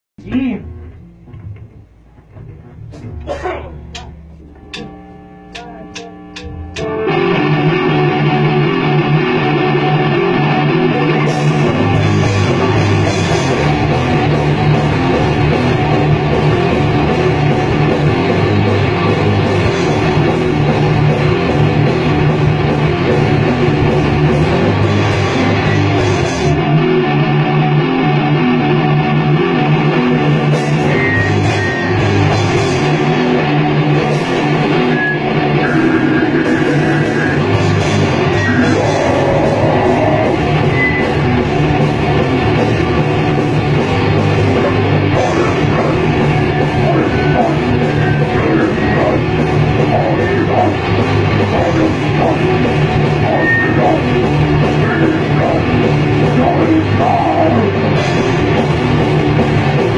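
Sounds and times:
bass guitar: 0.0s - 59.9s
distorted electric guitars: 0.0s - 59.9s
drums: 0.0s - 59.9s
held guitar note: 0.2s - 59.8s
cymbals: 2.9s - 7.0s.

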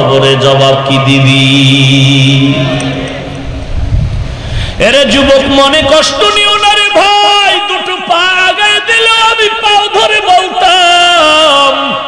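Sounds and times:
man chanting into a microphone: 0.0s - 3.0s, 4.7s - 12.0s.

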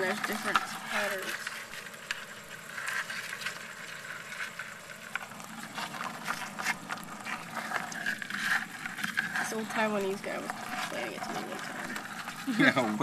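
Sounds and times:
crabs scrabbling in plastic bucket: 0.0s - 13.0s.

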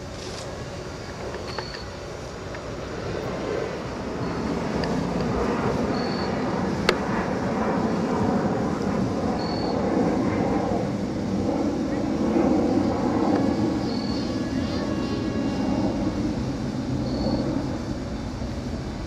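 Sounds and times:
steady rumbling noise: 0.0s - 19.0s.

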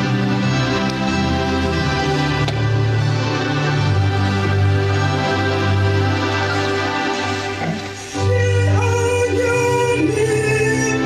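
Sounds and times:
electronic keyboard accompaniment: 0.0s - 11.0s
woman singing slow worship song: 8.0s - 11.0s.

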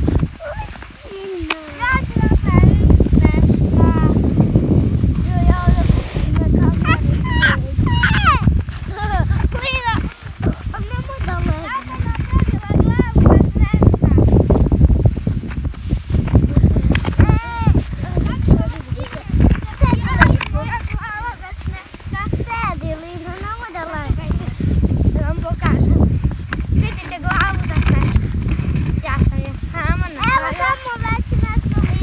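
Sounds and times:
footsteps crunching in snow: 0.0s - 7.4s, 8.2s - 32.0s
child's high wavering voice: 0.4s - 4.1s, 5.3s - 13.8s, 17.2s - 24.4s.

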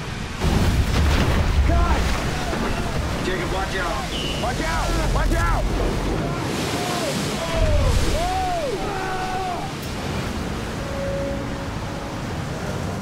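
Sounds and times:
ocean wave crashing over deck: 0.4s - 11.1s.

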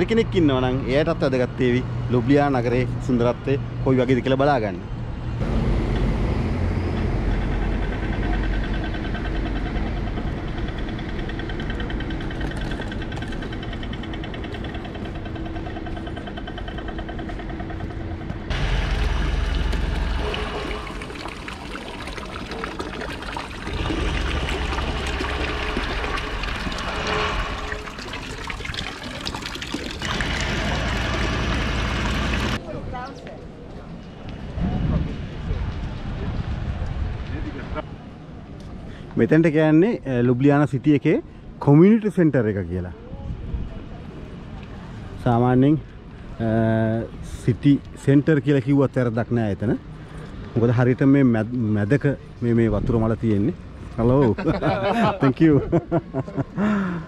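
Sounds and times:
city street traffic: 0.0s - 57.0s
truck rumbling past: 5.1s - 32.6s
fountain water splashing: 18.5s - 32.6s.

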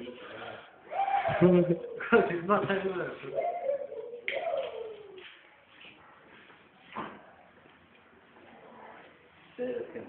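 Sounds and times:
person hooting downward: 0.9s - 2.0s.

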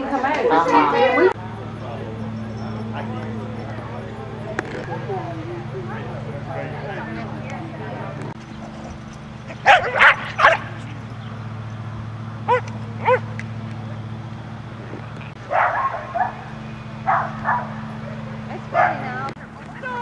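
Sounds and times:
dogs barking: 1.4s - 14.1s, 15.3s - 20.0s
dog yips: 12.5s - 13.2s.

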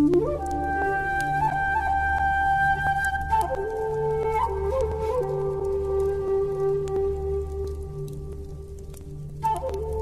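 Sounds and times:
flute long note: 0.0s - 8.4s, 9.4s - 10.0s
rain-like patter of drops: 0.0s - 10.0s.

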